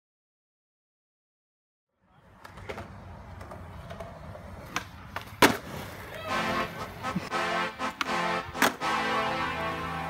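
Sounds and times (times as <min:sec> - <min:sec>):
skateboard wheels rolling on concrete: 0:02.0 - 0:10.0
skateboard light clacks: 0:02.4 - 0:06.1, 0:07.9 - 0:08.8
skateboard landing slap: 0:02.4 - 0:06.2, 0:07.9 - 0:08.9.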